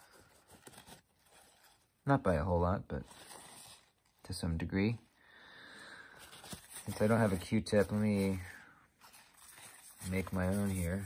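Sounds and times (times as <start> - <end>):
paper towel rustling: 0.0 - 5.0, 6.0 - 11.0.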